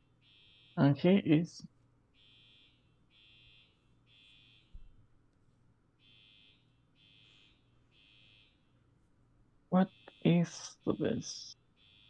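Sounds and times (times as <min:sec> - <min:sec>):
electronic alarm beeping: 0:00.2 - 0:00.9, 0:02.2 - 0:04.7, 0:06.0 - 0:08.6, 0:09.8 - 0:11.2, 0:11.8 - 0:12.0.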